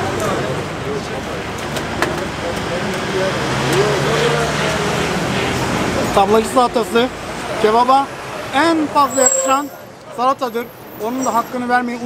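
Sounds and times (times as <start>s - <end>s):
faint voices: 0.0s - 12.0s
road traffic noise: 0.0s - 12.0s.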